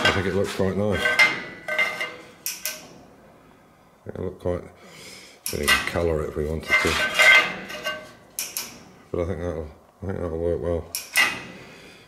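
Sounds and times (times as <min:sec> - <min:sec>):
steel parts clinking: 0:00.9 - 0:02.9, 0:06.6 - 0:08.8.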